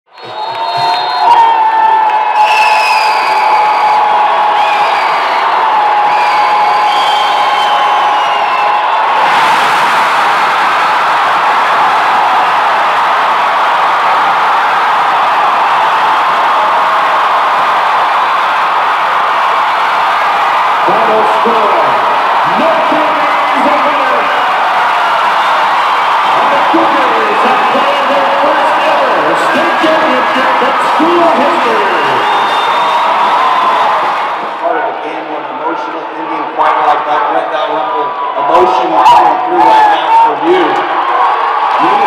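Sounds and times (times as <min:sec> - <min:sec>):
crowd cheering and screaming: 0:00.1 - 0:42.0.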